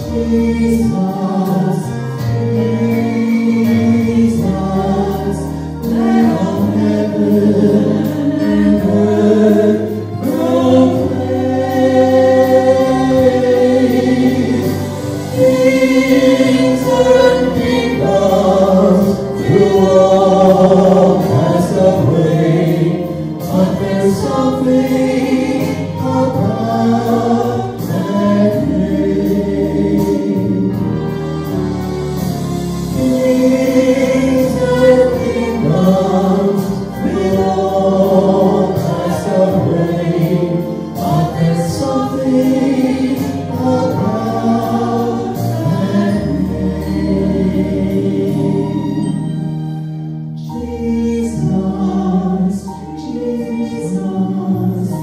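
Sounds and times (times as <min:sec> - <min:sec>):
man and woman singing: 0:00.0 - 0:31.1, 0:32.9 - 0:49.2, 0:50.4 - 0:55.0.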